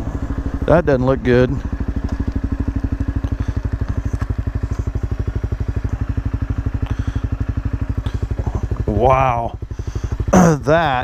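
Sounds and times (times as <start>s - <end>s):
motorcycle engine idling: 0.0s - 11.0s.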